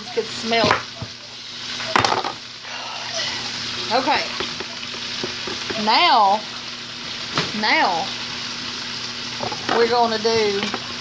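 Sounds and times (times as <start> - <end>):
cabbage sizzling in skillet: 0.0 - 11.0.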